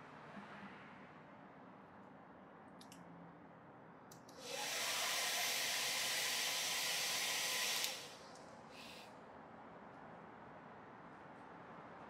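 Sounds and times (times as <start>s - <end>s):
hair dryer blowing: 4.4s - 8.2s.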